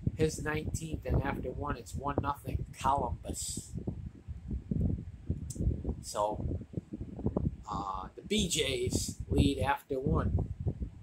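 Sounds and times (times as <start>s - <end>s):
muffled low thumps: 0.0s - 11.0s.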